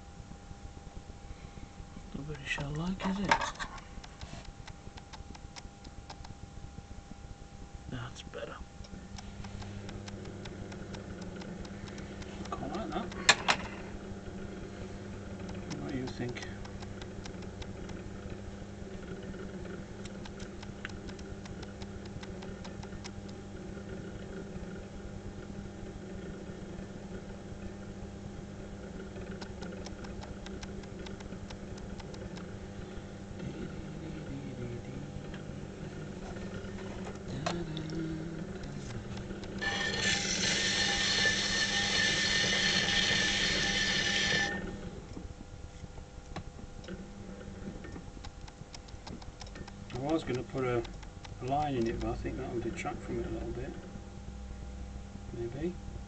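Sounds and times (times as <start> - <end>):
loud whirring with high whine: 0.0 - 56.0
potter's wheel motor humming: 0.0 - 56.0.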